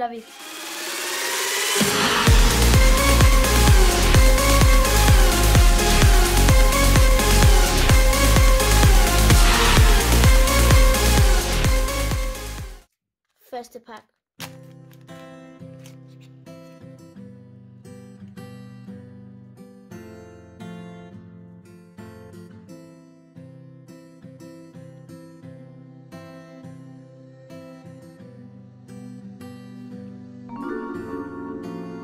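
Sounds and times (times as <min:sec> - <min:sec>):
plucked acoustic guitar music: 0:14.7 - 0:32.0.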